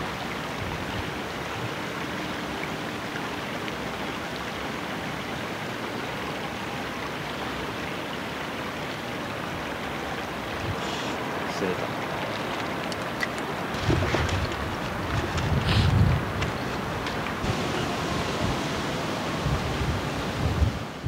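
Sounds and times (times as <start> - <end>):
water rushing over rocks: 0.0 - 21.0.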